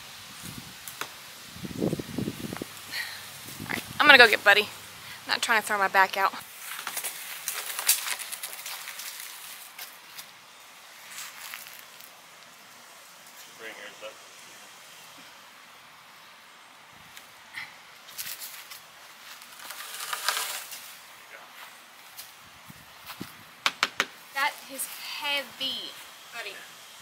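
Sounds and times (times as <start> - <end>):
wood knocking and scraping: 23.6 - 24.2.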